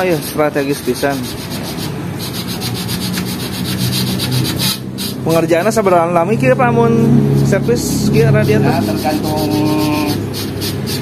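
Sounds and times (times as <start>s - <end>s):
metal rod scraping in tubes: 0.7s - 5.9s
low hum: 5.7s - 9.6s.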